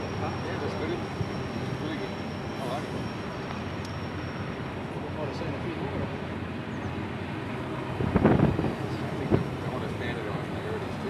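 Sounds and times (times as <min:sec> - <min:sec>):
freight train rumble: 0:00.0 - 0:11.0.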